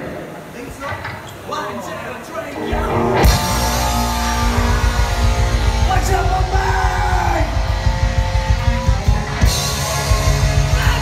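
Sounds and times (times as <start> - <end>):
distorted electric guitar chords: 2.6 - 11.0
punk rock band playing: 2.6 - 11.0
loud drum strike: 2.8 - 11.0.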